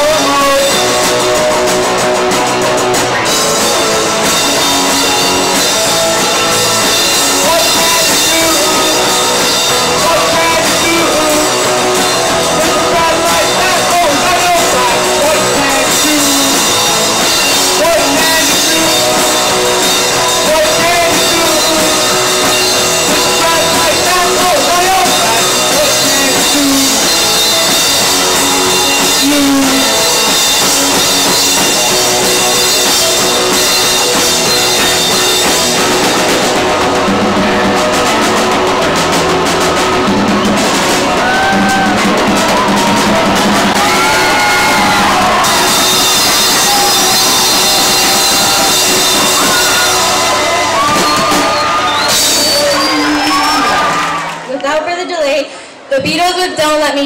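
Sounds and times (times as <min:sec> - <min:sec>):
rock band playing live: 0:00.0 - 0:57.0.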